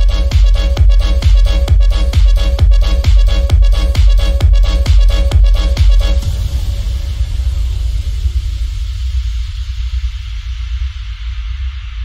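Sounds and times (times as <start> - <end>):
deep sub-bass rumble: 0.0 - 12.0.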